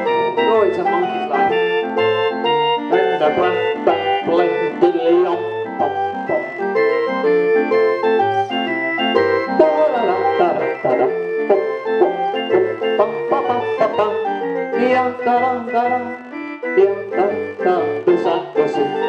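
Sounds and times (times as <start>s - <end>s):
barrel organ playing jaunty tune: 0.0s - 19.0s.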